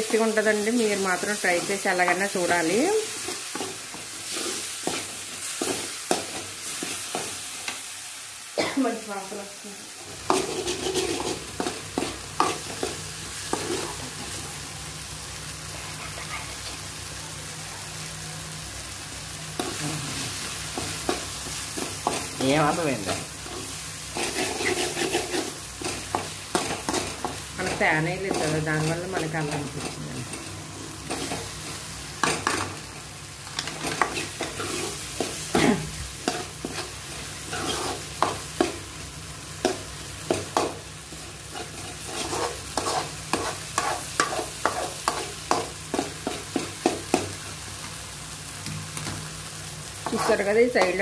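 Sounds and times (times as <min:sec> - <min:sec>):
masala sizzling: 0:00.0 - 0:51.0
spoon scraping metal pan: 0:10.3 - 0:12.9, 0:23.1 - 0:30.0, 0:41.5 - 0:46.4.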